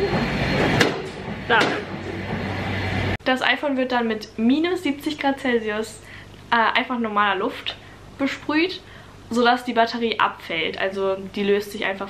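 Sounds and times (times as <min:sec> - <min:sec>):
machine hum: 0:00.0 - 0:03.3
hammer knock: 0:00.8 - 0:02.4.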